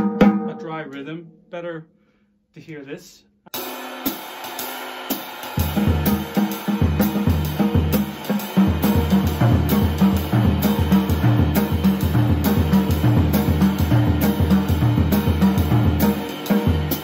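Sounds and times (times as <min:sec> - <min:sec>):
dry tom and snare strokes: 0:03.5 - 0:17.0
ride cymbal keeping time: 0:03.6 - 0:17.0.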